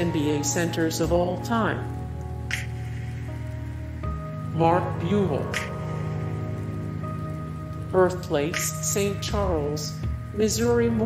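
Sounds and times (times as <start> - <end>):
soft ambient music pad: 0.0 - 11.0.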